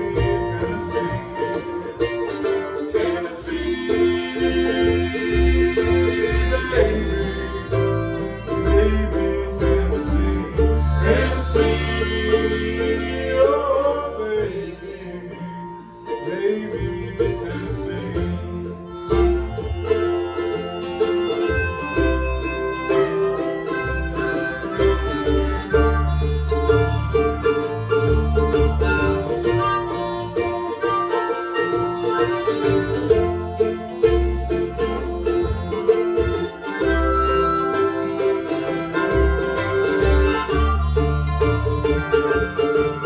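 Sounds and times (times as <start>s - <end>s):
bluegrass string band: 0.0s - 43.0s
harmonica held notes: 3.7s - 8.9s, 10.0s - 13.5s, 18.8s - 43.0s.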